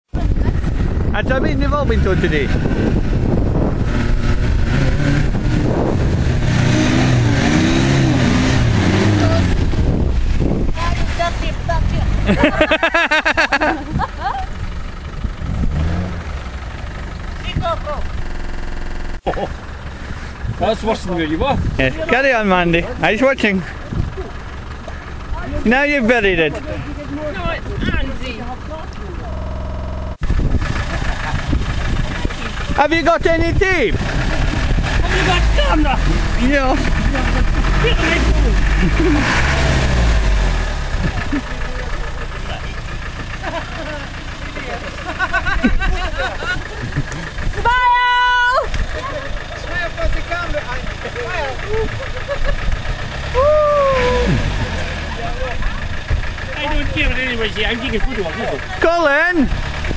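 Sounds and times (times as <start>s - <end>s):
heavy low rumble: 0.1s - 59.9s
engine revving under load: 0.2s - 47.9s, 48.6s - 59.9s.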